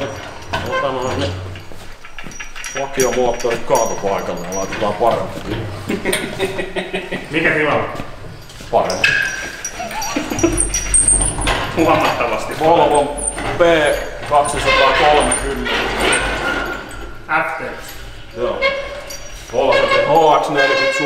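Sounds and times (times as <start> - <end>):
men talking: 0.0 - 1.6, 2.7 - 21.0.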